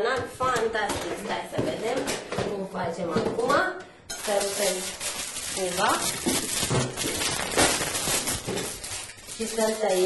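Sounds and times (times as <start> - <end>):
plastic wrapping crinkling: 4.1 - 10.0.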